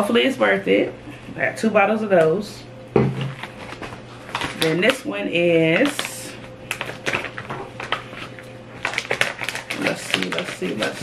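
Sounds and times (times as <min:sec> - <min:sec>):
plastic bag crinkling: 0:03.3 - 0:05.1, 0:05.7 - 0:11.0.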